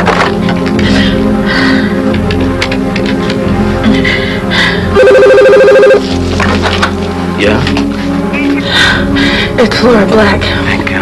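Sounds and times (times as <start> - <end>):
tense background music: 0.0 - 11.0
electronic telephone ring: 5.0 - 6.1.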